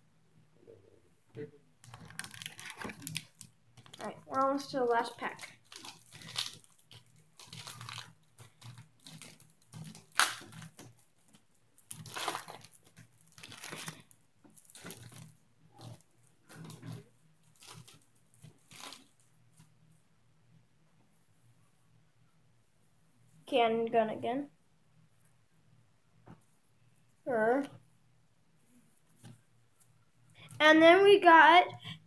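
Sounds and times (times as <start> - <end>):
wrapper tearing and crinkling: 1.8 - 19.2.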